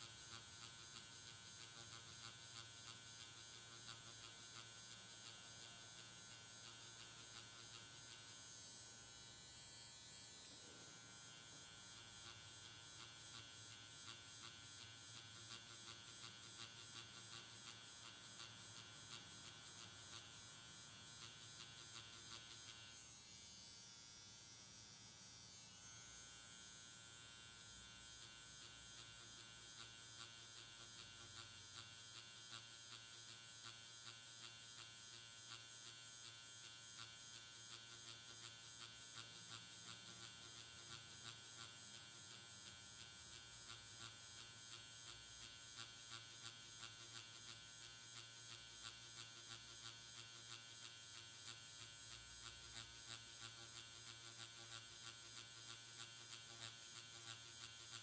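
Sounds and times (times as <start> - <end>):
makeup machine buzzing faintly: 0.0 - 58.0.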